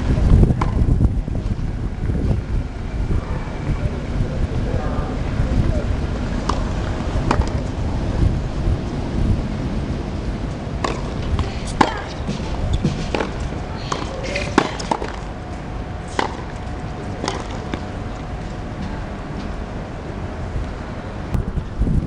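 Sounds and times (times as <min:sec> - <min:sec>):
wind rumble on microphone: 0:00.0 - 0:22.0
tennis balls struck by rackets: 0:00.6 - 0:01.0, 0:06.4 - 0:07.7, 0:10.8 - 0:15.4, 0:16.0 - 0:18.2.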